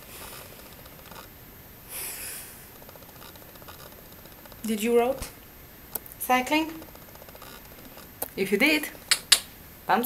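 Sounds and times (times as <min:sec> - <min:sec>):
short breathy hiss: 0:01.9 - 0:02.7.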